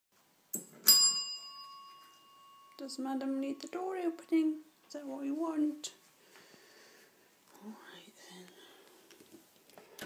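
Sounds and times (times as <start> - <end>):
desk bell ringing: 0.6 - 3.7.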